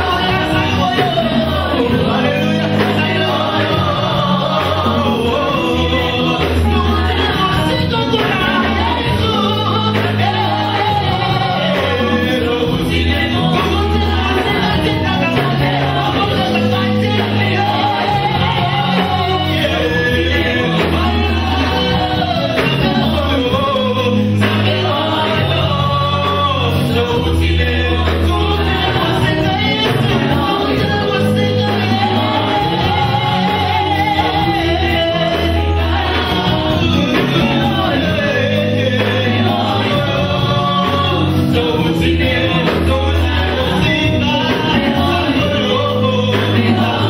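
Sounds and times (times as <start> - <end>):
band with bass line: 0.0 - 47.0
electric guitar: 0.0 - 47.0
gospel singers: 0.0 - 47.0.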